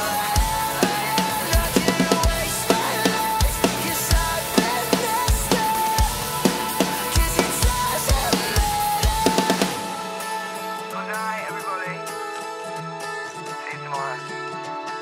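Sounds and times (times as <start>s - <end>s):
drum kit played with rods: 0.0s - 11.8s
rock backing track: 0.0s - 15.0s.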